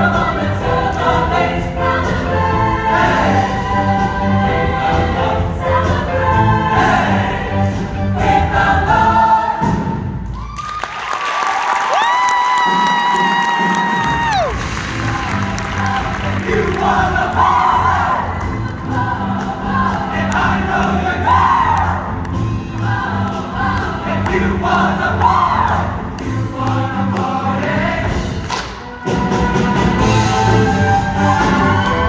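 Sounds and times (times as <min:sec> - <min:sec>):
choir singing: 0:00.0 - 0:10.2, 0:14.8 - 0:32.0.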